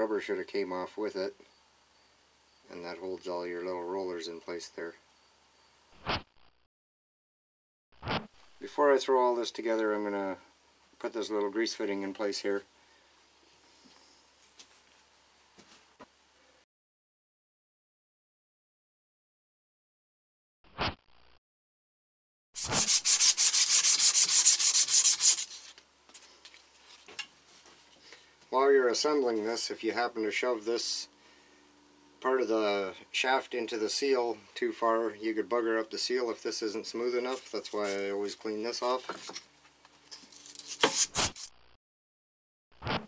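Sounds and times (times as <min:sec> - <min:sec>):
hand rubbing metal strokes: 0:22.6 - 0:26.3, 0:40.3 - 0:41.5.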